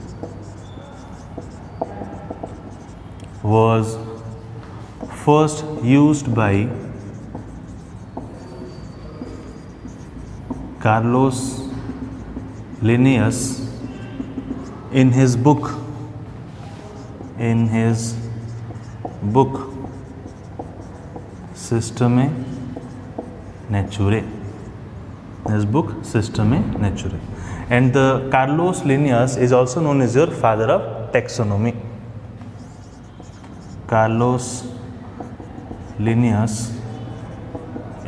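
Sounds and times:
marker pen writing on whiteboard: 0.0 - 38.0.

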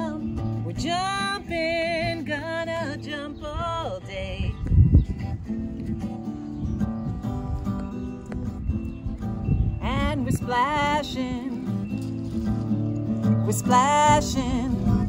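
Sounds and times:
acoustic guitar strumming: 0.0 - 15.0.

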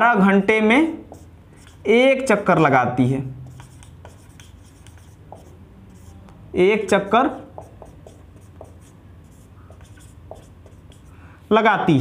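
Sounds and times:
low steady hum: 0.0 - 12.0
marker writing on whiteboard: 0.6 - 11.2.

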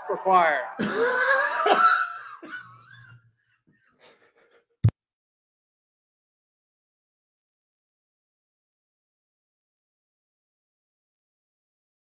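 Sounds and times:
man laughing: 0.8 - 3.2, 4.0 - 4.7.

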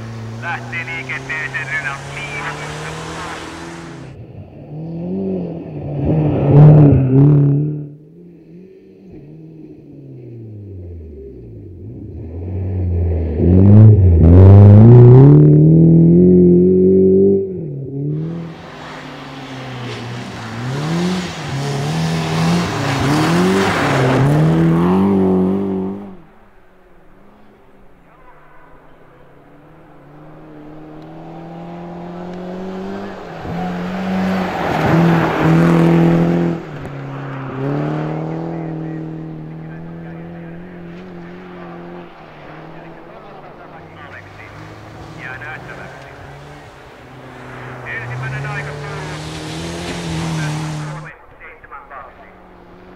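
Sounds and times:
rally car engine revving: 0.0 - 52.9.

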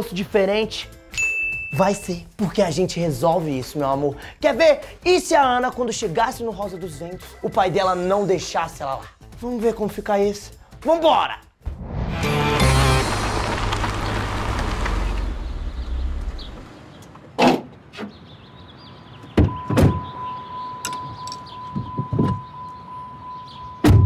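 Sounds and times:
whooshing sweep: 11.6 - 15.2
musical logo sting: 11.8 - 13.6.

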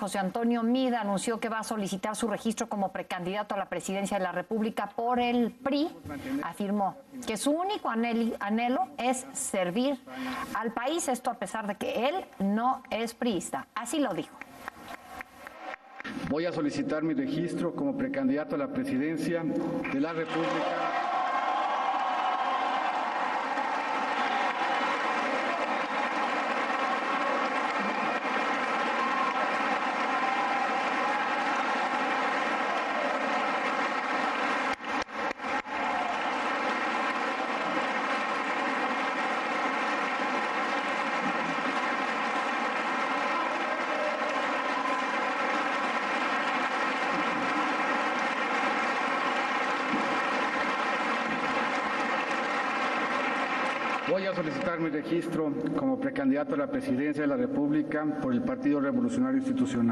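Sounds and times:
crowd applauding and cheering: 14.3 - 16.6, 19.8 - 55.4.

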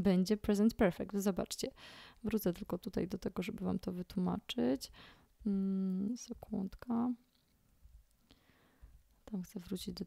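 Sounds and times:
person speaking: 5.4 - 7.4, 9.2 - 10.0.

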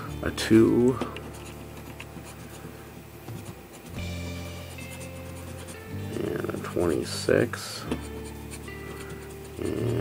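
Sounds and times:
coin scraping scratch card: 1.0 - 10.0.

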